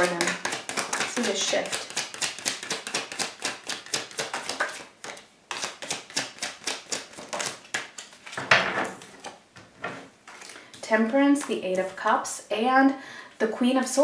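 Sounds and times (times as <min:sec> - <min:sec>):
cards being shuffled: 0:00.0 - 0:08.4
cards rustling: 0:00.0 - 0:08.4.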